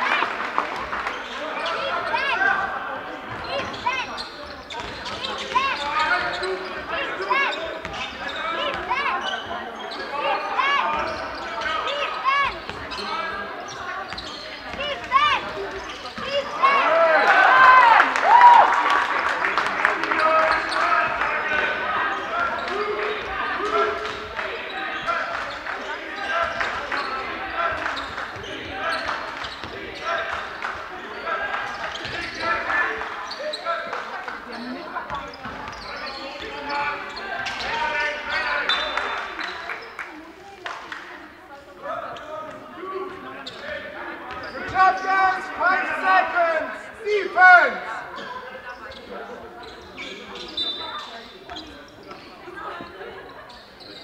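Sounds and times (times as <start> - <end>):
crowd and players shouting: 0.0 - 39.9, 41.9 - 48.4
sneakers squeaking on wooden floor: 0.8 - 17.0, 20.1 - 40.0, 42.0 - 46.8, 47.6 - 54.0.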